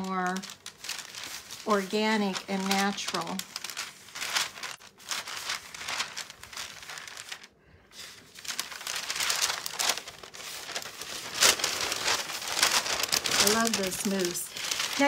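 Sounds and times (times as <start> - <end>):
tissue paper crinkling: 0.0 - 15.0.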